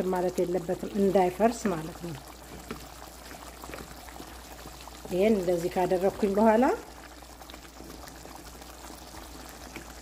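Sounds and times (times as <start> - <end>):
stew bubbling in a pan: 0.0 - 10.0.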